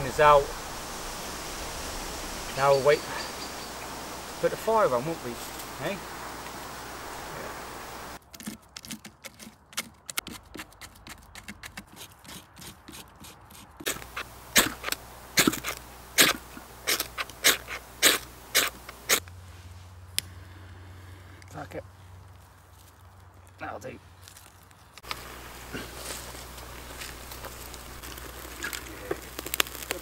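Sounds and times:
kindling crackling in a fire: 0.0 - 8.2, 13.8 - 30.0.

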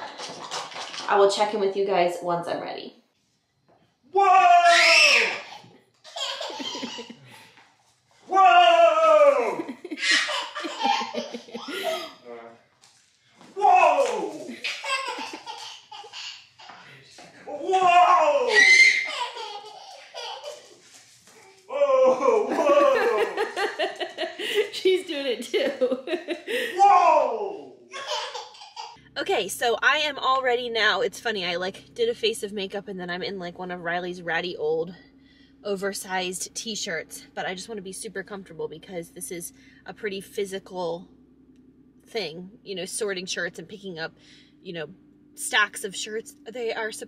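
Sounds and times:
breathy laughter: 5.5 - 7.6, 9.4 - 12.5, 19.3 - 20.7, 22.1 - 25.0, 25.6 - 26.8.

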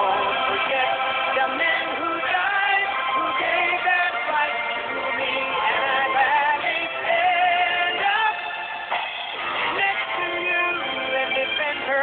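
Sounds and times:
muffled country-pop song: 0.0 - 12.0.

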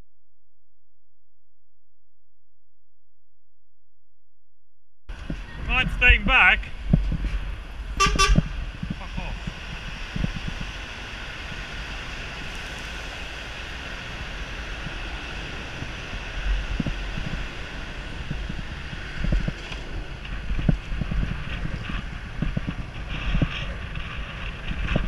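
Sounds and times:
city traffic: 5.1 - 25.0
wind rumble on microphone: 5.1 - 25.0.

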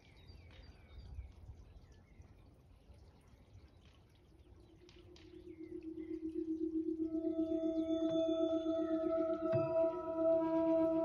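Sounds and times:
low pulsing drone tone: 4.5 - 11.0
higher held tones: 5.8 - 11.0.

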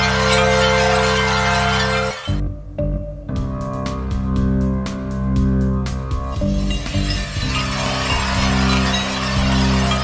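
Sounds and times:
noisy sustained chord: 0.0 - 2.4
low bass notes and hits: 2.2 - 10.0.

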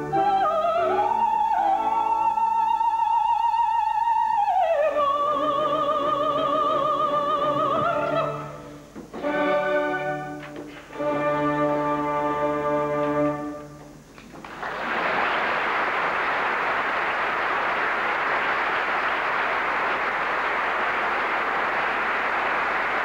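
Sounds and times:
audience applause: 14.2 - 23.0.

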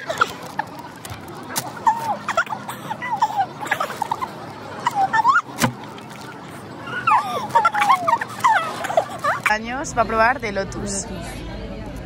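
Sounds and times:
women giggling and squealing: 0.0 - 5.6, 6.2 - 9.8.

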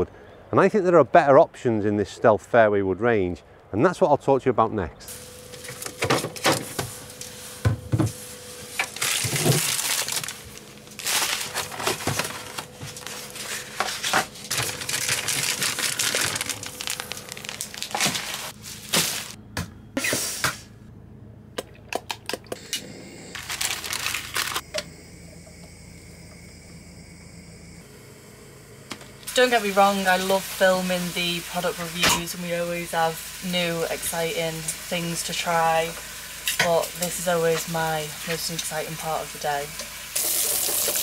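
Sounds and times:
plastic packaging crinkling: 8.7 - 19.4, 23.4 - 24.6.

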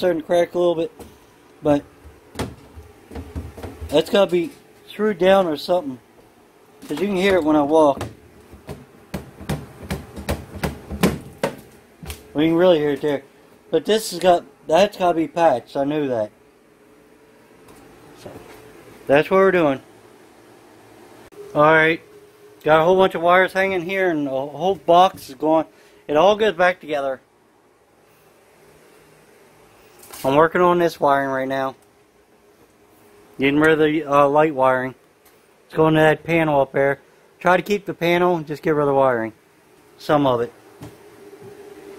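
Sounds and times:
faint steady hiss: 0.0 - 41.9
footsteps on loose floor panel: 2.0 - 4.2.

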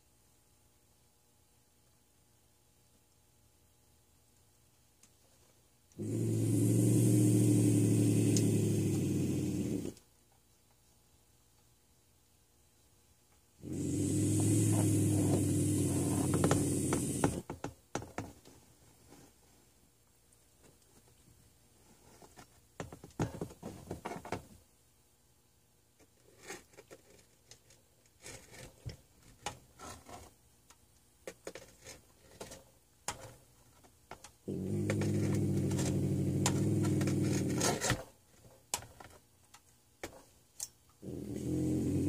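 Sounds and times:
bobcat growling and hissing: 6.0 - 10.0, 13.6 - 17.4, 34.5 - 38.0, 41.0 - 42.0.

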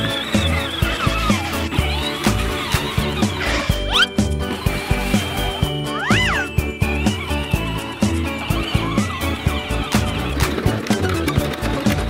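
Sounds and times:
short rising and falling squeal: 0.0 - 10.0
background music with steady beat: 0.0 - 12.0.

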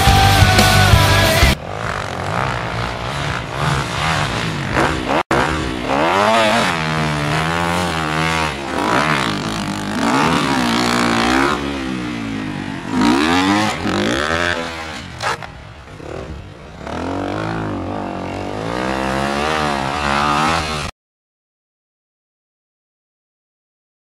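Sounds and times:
dirt bike engines revving: 0.0 - 20.9.

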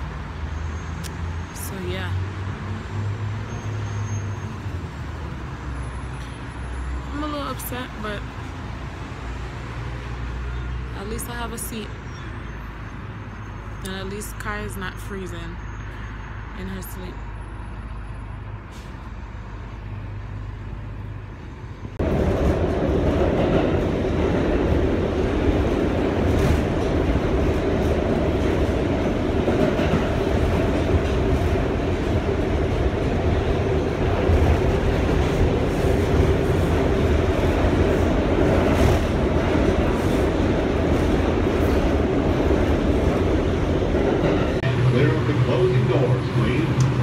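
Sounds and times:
subway train running: 18.6 - 47.0.

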